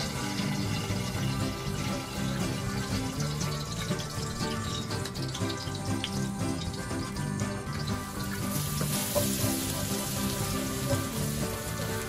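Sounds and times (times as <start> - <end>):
background music: 0.0 - 12.0
garlic sizzling in hot oil: 0.0 - 12.0.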